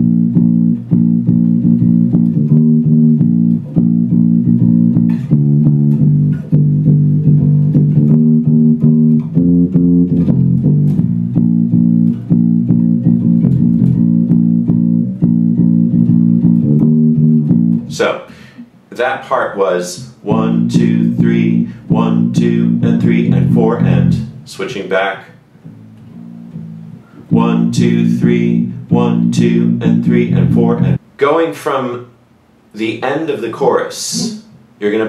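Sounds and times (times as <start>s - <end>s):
electric bass line plucked: 0.0s - 18.0s, 20.3s - 24.5s, 25.6s - 31.0s.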